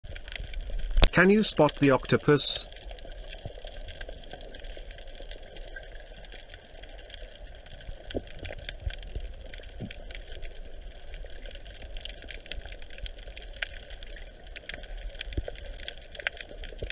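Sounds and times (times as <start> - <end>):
sharp clicks and crackles: 0.1 - 16.9.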